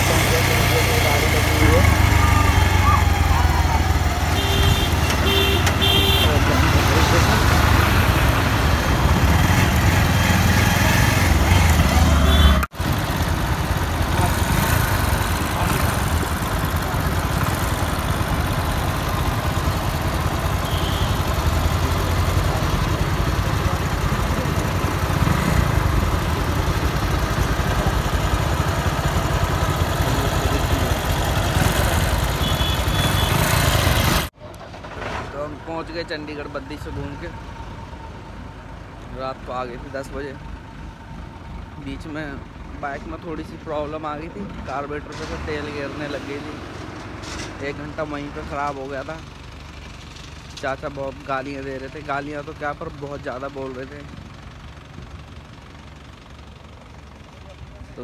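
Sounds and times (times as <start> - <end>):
horn toots: 0.0 - 8.0, 9.2 - 12.7, 20.5 - 21.8, 30.3 - 34.3
motorcycle engine rumble: 0.0 - 35.7.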